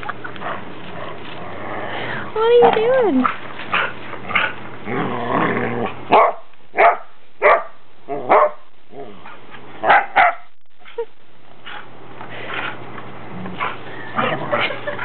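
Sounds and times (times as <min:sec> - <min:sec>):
dog growling: 0:00.4 - 0:02.9, 0:03.7 - 0:06.1
dog barking: 0:06.1 - 0:08.7, 0:09.8 - 0:10.5.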